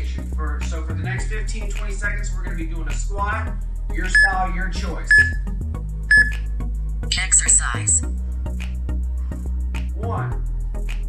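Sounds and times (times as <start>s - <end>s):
music with steady beat: 4.0s - 9.0s
short high beeps: 4.2s - 4.4s, 5.1s - 5.4s, 6.1s - 6.4s, 7.1s - 8.0s.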